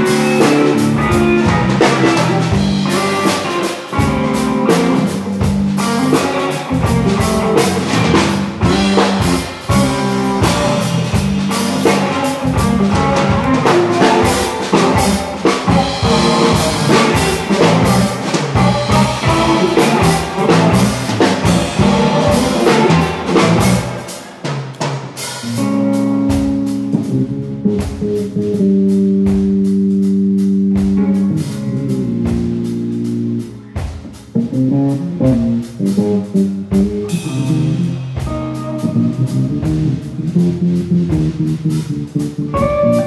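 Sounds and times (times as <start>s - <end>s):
drum kit playing: 0.0s - 43.0s
electric bass: 0.0s - 43.0s
electric guitar: 0.0s - 43.0s.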